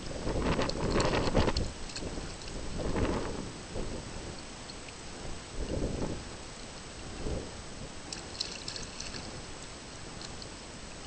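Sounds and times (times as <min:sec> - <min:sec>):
water pouring and splashing: 0:08.0 - 0:10.6.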